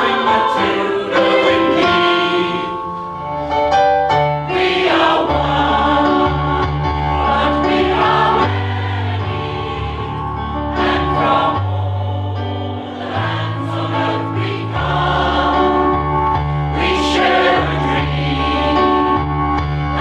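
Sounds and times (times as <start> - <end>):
mixed choir singing in harmony: 0.0 - 3.5, 4.4 - 20.0.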